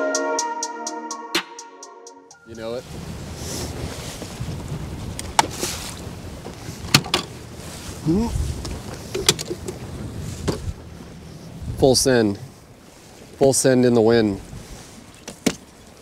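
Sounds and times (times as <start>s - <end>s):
choppy water: 2.5s - 16.0s
wind buffeting microphone: 2.5s - 16.0s.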